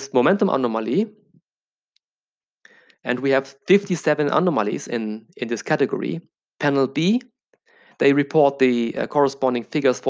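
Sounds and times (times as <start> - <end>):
man speaking: 0.0 - 1.3, 3.0 - 7.4, 8.0 - 10.0
short breath: 2.6 - 3.1, 7.6 - 8.0.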